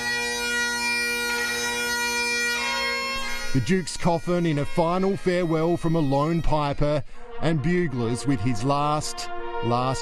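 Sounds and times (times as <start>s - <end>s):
bagpipes playing: 0.0s - 10.0s.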